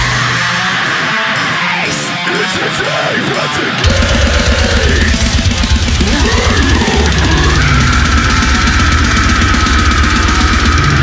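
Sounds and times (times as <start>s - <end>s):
heavy metal band playing: 0.0s - 11.0s.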